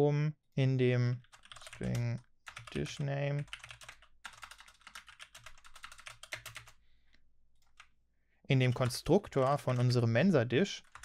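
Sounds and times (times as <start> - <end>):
typing on computer keyboard: 1.2 - 6.8, 8.7 - 10.0.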